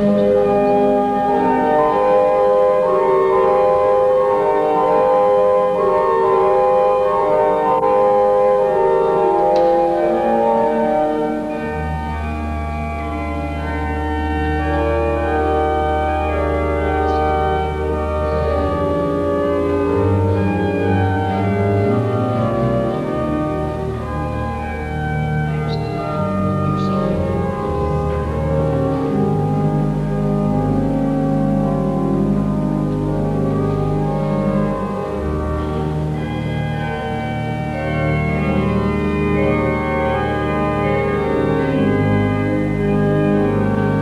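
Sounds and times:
pipe organ playing chords: 0.0 - 44.0.

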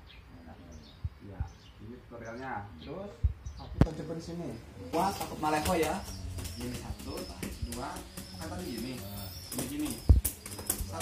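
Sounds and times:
doves cooing: 4.5 - 11.0.

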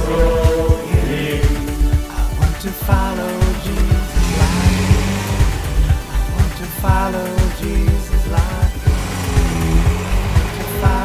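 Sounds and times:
pop-rock song with drums: 0.0 - 11.0.

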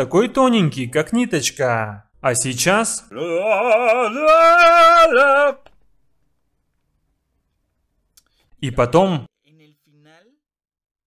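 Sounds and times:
man singing a long note: 3.1 - 5.7.

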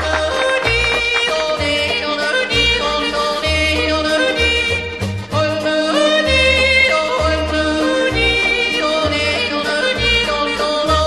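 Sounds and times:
band accompaniment: 0.0 - 11.0
person yodeling: 0.0 - 11.0.

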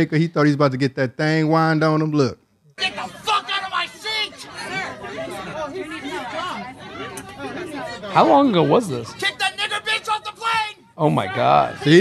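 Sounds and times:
indistinct voices talking: 2.8 - 12.0.

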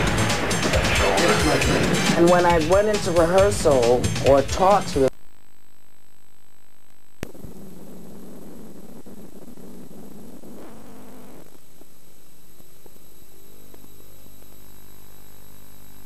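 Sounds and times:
high-pitched whine: 0.0 - 16.0
tape hiss and hum: 0.0 - 16.0
rough rumbling noise: 7.2 - 12.1.

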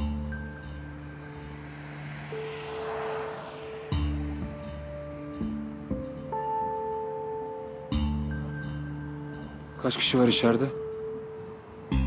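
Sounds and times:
car passing: 0.0 - 6.6
background music with drone: 0.0 - 12.0.

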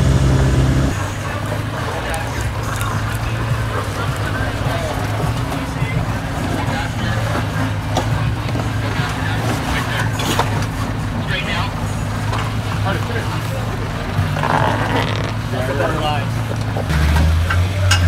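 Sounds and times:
engine running at low revs: 0.0 - 18.0
people's voices: 0.0 - 18.0.

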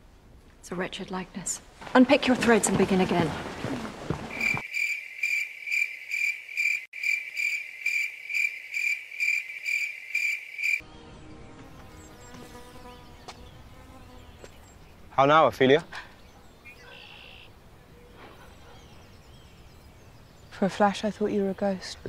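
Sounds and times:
cricket chirping: 4.3 - 10.8, 16.6 - 17.7.

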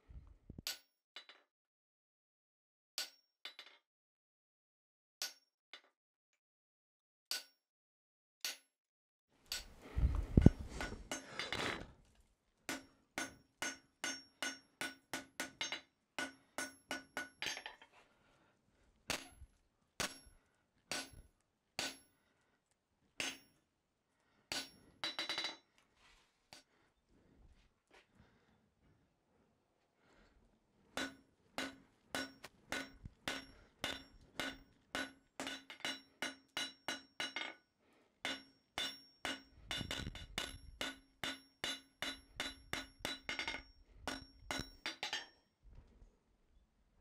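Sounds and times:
hammer striking steel on anvil: 3.0 - 3.3, 5.2 - 5.5, 7.3 - 7.6, 10.4 - 11.4, 12.7 - 17.8, 19.1 - 19.4, 20.0 - 21.2, 21.8 - 22.2, 23.2 - 23.6, 24.5 - 25.6, 31.0 - 37.6, 38.2 - 45.4.

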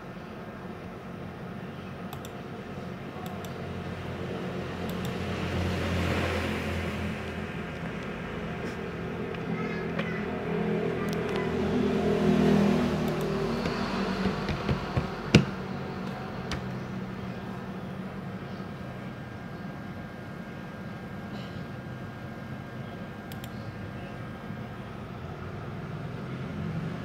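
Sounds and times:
sharp clicks: 2.1 - 2.4, 4.8 - 5.2, 23.3 - 23.6
motor humming: 7.1 - 19.6.

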